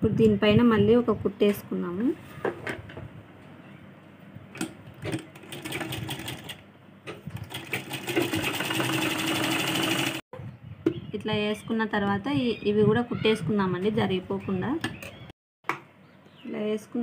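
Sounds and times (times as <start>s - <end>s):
sewing machine stitching: 5.0s - 6.6s, 7.4s - 10.2s.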